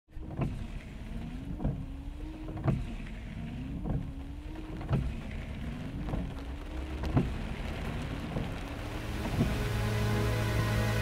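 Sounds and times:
steady low rumble in car: 0:00.1 - 0:11.0.

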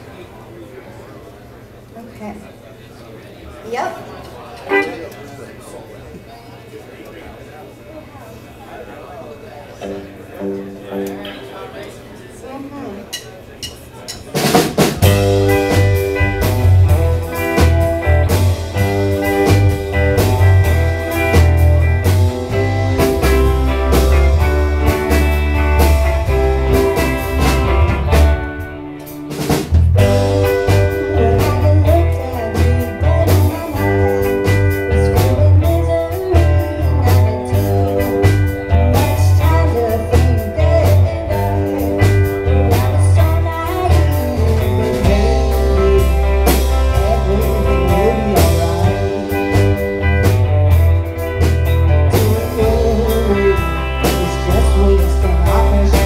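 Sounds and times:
electric guitars: 0:09.8 - 0:11.8, 0:14.4 - 0:56.0
drums: 0:09.8 - 0:56.0
heavy bass line: 0:15.0 - 0:56.0.

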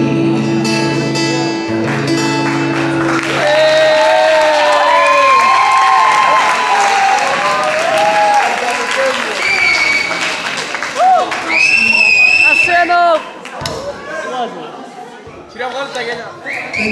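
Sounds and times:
acoustic guitar chord ringing: 0:00.0 - 0:03.3
audience applauding: 0:01.7 - 0:13.6
audience cheering: 0:03.0 - 0:13.3.

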